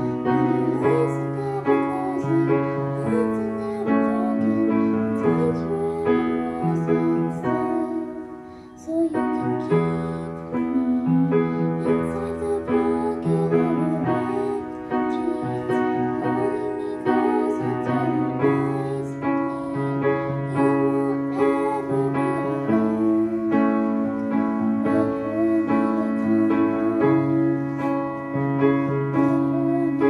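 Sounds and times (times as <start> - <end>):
upright piano playing: 0.0 - 30.0.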